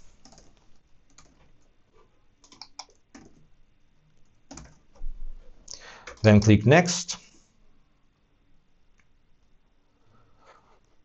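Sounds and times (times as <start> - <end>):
computer keyboard typing: 0.2 - 1.4, 2.4 - 3.5, 4.2 - 5.0.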